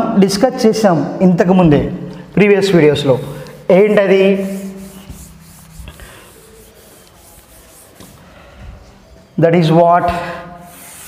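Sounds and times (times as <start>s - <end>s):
duster rubbing on chalkboard: 2.6s - 8.5s, 10.6s - 11.0s.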